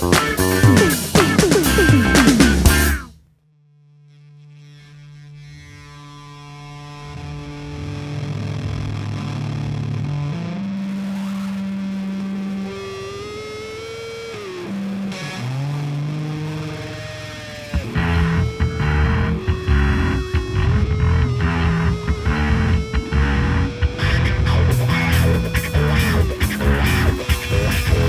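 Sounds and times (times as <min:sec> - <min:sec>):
distorted electric guitar bending notes: 0:00.0 - 0:03.1, 0:04.2 - 0:28.0
full band playing: 0:00.0 - 0:03.1.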